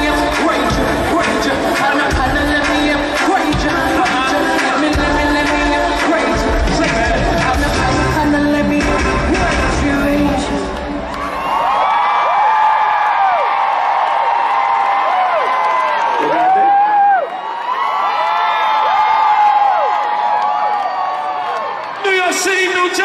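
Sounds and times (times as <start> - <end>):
concert crowd screaming and cheering: 0.0 - 23.0
band music with bass: 4.9 - 10.8.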